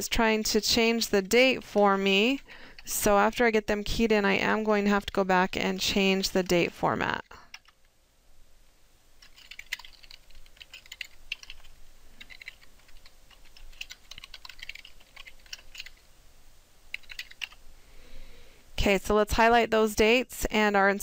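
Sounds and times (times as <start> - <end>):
typing on computer keyboard: 7.4 - 7.8, 9.2 - 16.0, 16.9 - 17.6.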